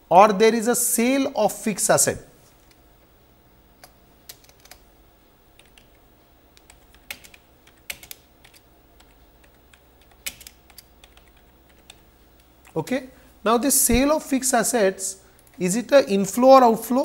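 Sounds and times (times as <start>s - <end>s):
computer keyboard typing: 3.8s - 4.8s, 5.6s - 6.0s, 6.6s - 12.1s.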